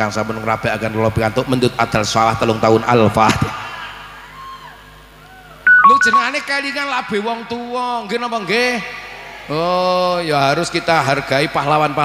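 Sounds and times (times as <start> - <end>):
electronic keyboard notes: 5.7 - 6.4.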